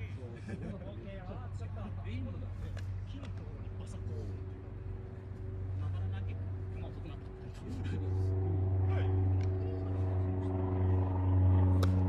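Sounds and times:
sharp crack: 11.7 - 12.0.

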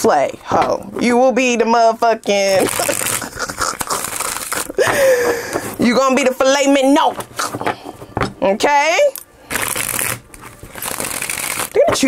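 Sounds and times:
cards being shuffled: 2.6 - 6.4, 9.5 - 12.0.

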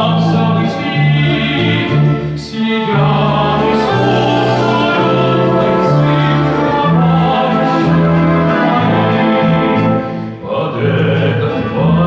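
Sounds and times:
brass band playing a waltz: 0.0 - 10.4
man singing tenor: 0.0 - 12.0.

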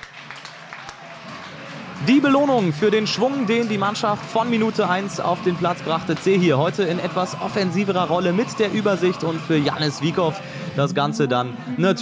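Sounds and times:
scattered clapping: 0.0 - 10.4.

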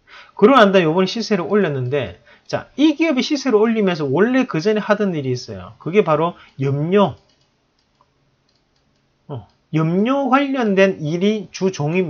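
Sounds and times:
computer mouse clicks: 7.2 - 9.6.

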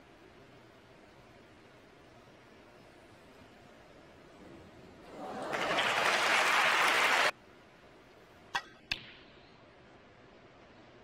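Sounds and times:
audience applause: 5.1 - 7.4.

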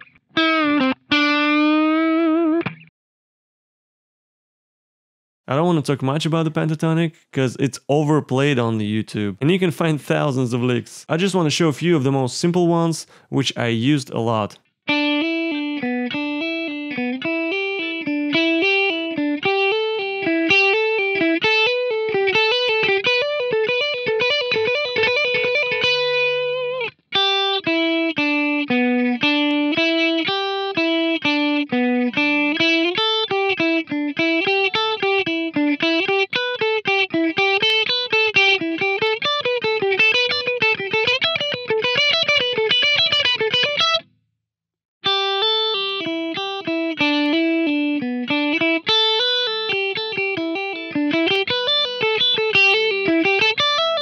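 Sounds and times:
electric guitar licks: 0.0 - 2.9, 6.0 - 44.1, 45.0 - 54.0.

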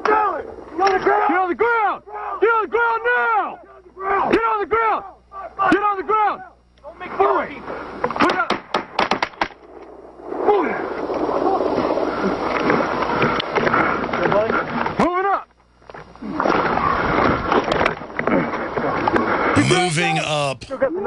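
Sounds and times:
noisy outdoor background: 0.0 - 21.0.

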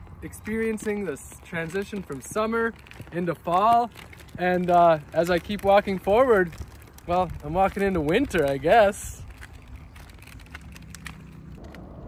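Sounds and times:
handcart wheels rumbling on pavement: 0.0 - 12.0.

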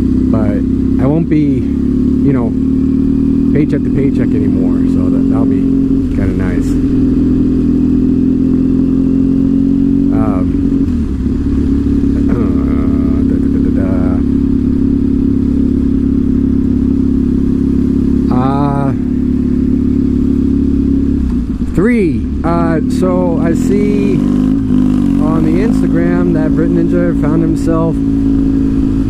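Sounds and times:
motorcycle engine cruising: 0.0 - 29.0.

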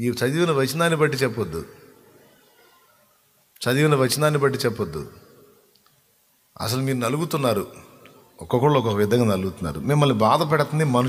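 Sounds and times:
man preaching into a microphone: 0.0 - 1.8, 3.6 - 5.3, 6.6 - 11.0
faint clicks: 5.7 - 6.0.

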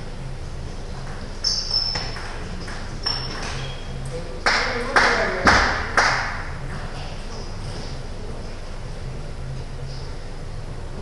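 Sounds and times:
table tennis ball hits: 1.6 - 3.8, 4.5 - 6.5.

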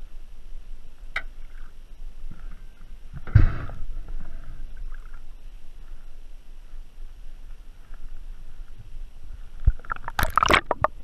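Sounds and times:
water splash: 9.7 - 11.0.

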